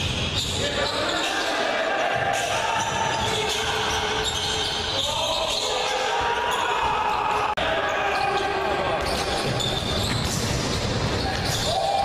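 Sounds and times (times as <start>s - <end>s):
voices in echoing gym: 0.0s - 12.0s
basketball bouncing on court: 9.0s - 11.7s.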